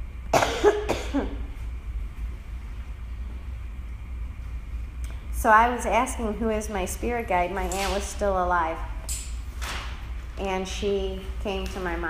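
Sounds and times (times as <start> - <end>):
woman coughing: 0.3 - 1.5.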